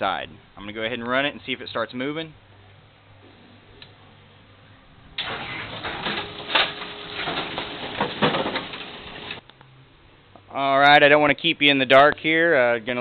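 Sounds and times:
machine knocking and humming: 5.2 - 9.4.

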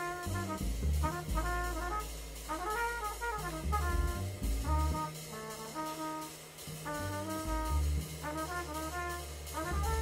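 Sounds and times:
band playing low note: 0.0 - 10.0
trumpet playing slow jazz: 0.0 - 10.0.

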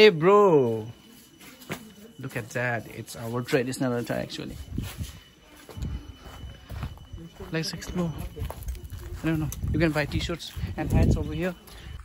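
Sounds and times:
faint high steady tone: 0.0 - 12.0
footsteps low thuds: 4.6 - 11.4.

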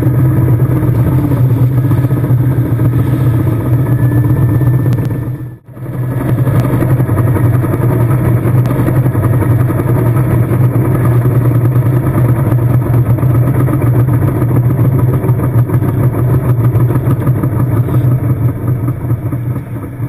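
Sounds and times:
diesel tractor engine running: 0.0 - 20.0
rough mechanical rattle: 0.0 - 20.0.

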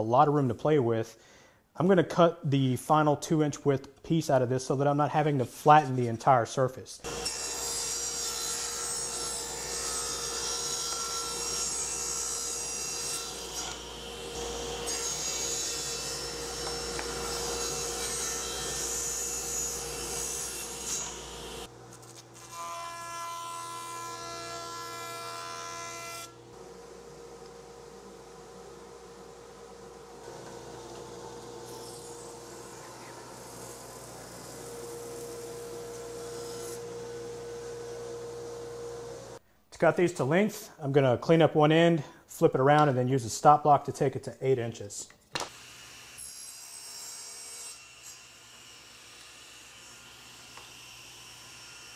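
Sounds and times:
table saw ripping wood: 7.1 - 26.7, 29.8 - 37.7
jointer whining: 26.4 - 39.4
quiet machine running: 26.6 - 39.4.

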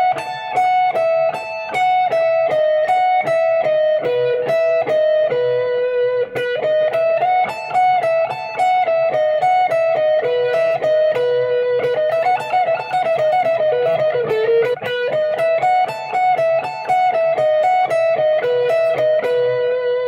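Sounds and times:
fast picked electric guitar lick: 0.0 - 20.0.

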